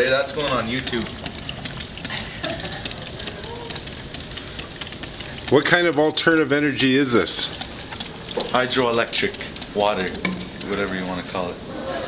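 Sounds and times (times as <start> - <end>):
water turbine rapid clicking: 0.0 - 12.0.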